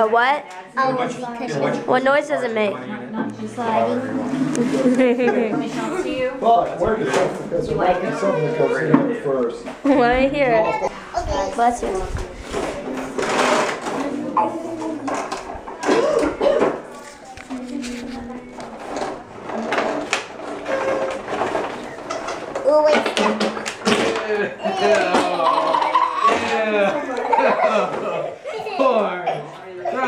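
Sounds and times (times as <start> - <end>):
adults and children talking: 0.0 - 30.0.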